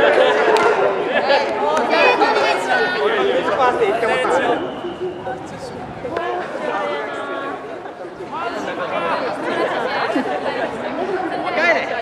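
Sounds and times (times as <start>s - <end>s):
group of people chattering: 0.0s - 12.0s.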